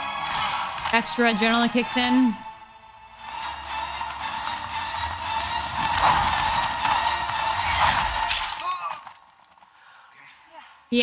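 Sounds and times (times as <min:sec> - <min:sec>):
dramatic music: 0:00.0 - 0:09.4.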